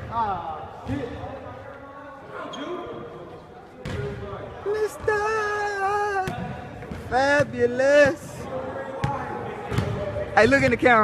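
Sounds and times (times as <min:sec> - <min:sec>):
basketball bouncing on court: 0:06.2 - 0:08.3, 0:09.0 - 0:11.0.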